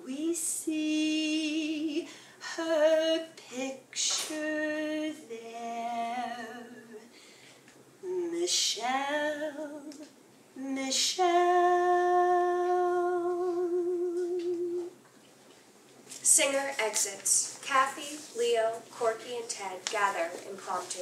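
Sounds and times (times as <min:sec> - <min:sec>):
woman singing unaccompanied: 0:00.0 - 0:07.1, 0:08.0 - 0:15.0.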